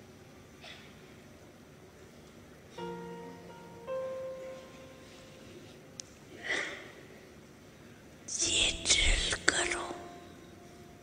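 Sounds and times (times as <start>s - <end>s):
breathy whispered voice: 8.3s - 10.4s.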